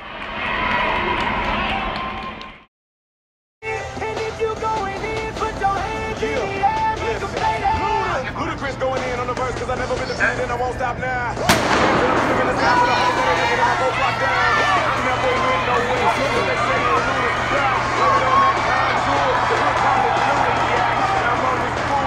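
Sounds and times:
spectators cheering and shouting: 0:00.0 - 0:02.6, 0:11.5 - 0:22.0
starting pistol crack: 0:11.5 - 0:14.1.

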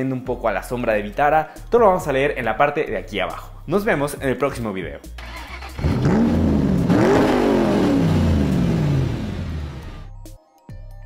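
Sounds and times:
car engine revving: 0:05.2 - 0:10.1.

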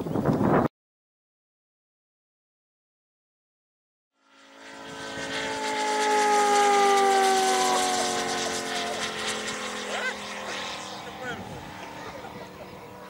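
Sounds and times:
model plane engine flying past: 0:04.2 - 0:13.0.

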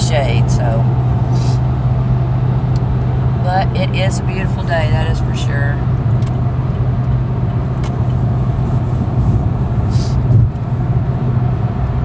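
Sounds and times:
low engine hum: 0:00.0 - 0:12.0
road noise: 0:00.0 - 0:12.0.

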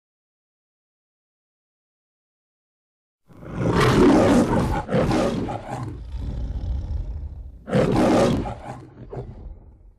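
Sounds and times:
lion roar: 0:03.3 - 0:09.9.

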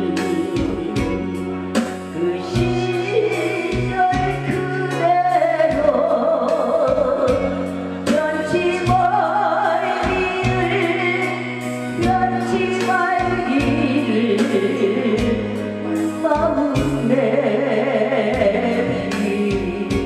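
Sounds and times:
woman singing with vibrato: 0:00.0 - 0:01.3, 0:02.1 - 0:20.0
instrumental accompaniment: 0:00.0 - 0:20.0.

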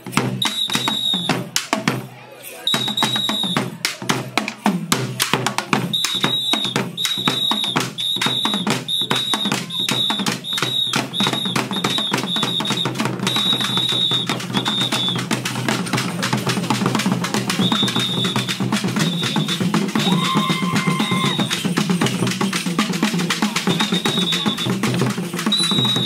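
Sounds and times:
drums beaten in fast rhythm: 0:00.0 - 0:26.0
high tone in short blasts: 0:25.6 - 0:26.0.

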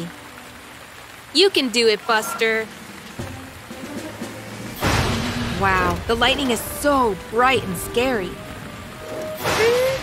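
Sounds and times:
soft background music: 0:00.0 - 0:10.0
steady rain: 0:00.0 - 0:10.0
loud thunder crack: 0:04.6 - 0:06.4.

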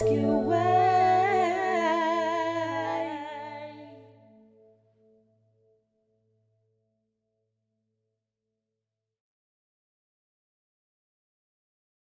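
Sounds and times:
sustained low chord: 0:00.0 - 0:05.2.

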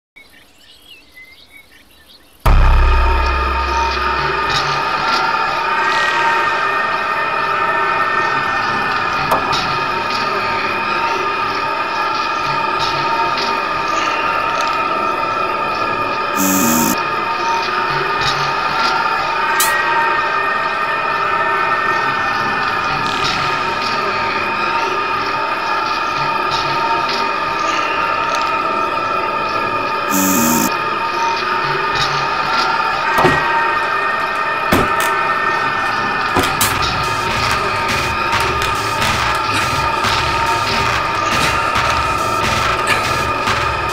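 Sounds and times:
deep thud: 0:02.5 - 0:05.3
high piercing synth drone: 0:02.5 - 0:06.7, 0:16.4 - 0:17.1, 0:30.1 - 0:30.8.

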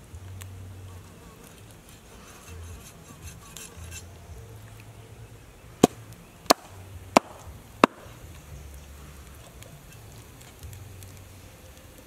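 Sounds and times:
cleaver chopping on wooden board: 0:05.8 - 0:08.1.

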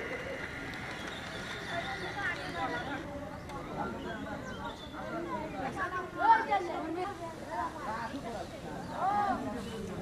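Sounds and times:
people talking over one another: 0:00.0 - 0:10.0.

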